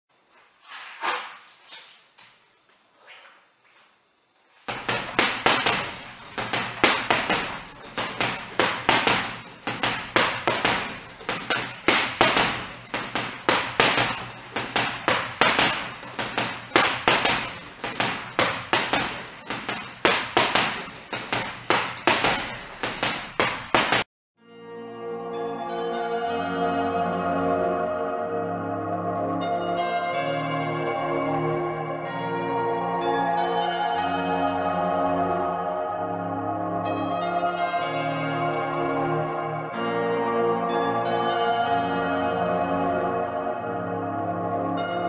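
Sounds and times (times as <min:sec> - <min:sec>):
boxing gloves hitting heavy bag: 0:04.6 - 0:24.1.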